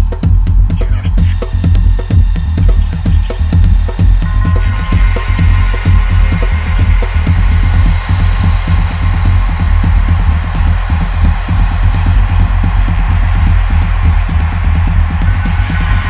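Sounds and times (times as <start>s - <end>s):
drums and metal percussion: 0.0s - 16.0s
heavy low bass: 0.0s - 16.0s.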